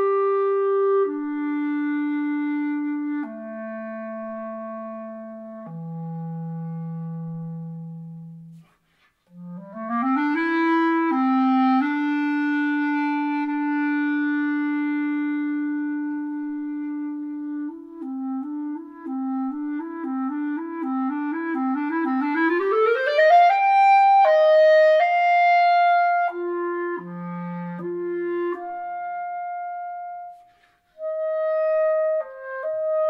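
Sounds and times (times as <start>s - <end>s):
clarinet playing: 0.0s - 33.0s.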